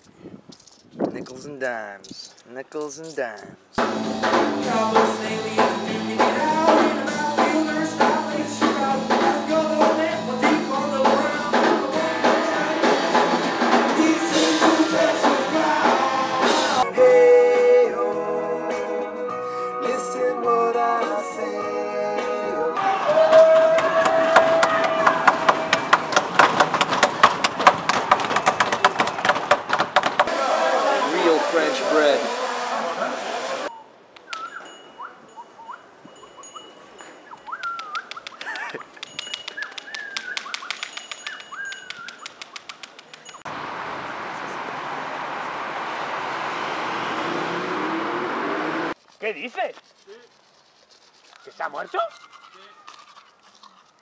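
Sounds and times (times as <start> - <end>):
people running on hard floor: 23.3 - 30.3
loud voice sound: 30.3 - 33.6
toothbrush scrubbing teeth: 49.8 - 54.0.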